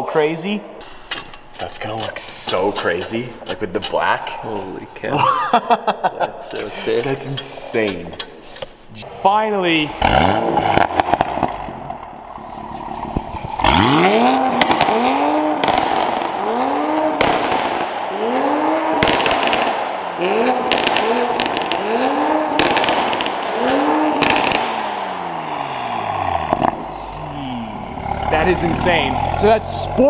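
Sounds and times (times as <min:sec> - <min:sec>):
exhaust crackles and pops: 0:00.8 - 0:04.6, 0:09.8 - 0:25.1, 0:26.0 - 0:30.0
car engine revving: 0:09.8 - 0:30.0.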